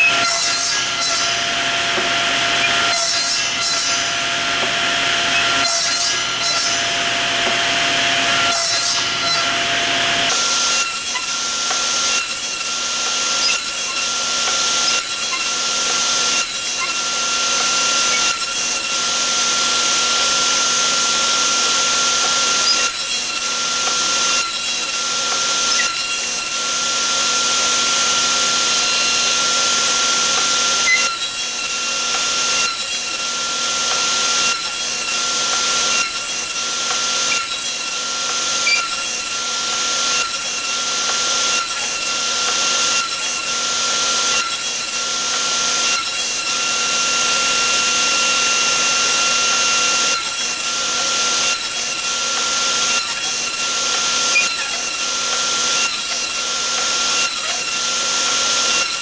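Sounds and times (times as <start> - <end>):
table saw cutting wood: 0.0 - 59.0.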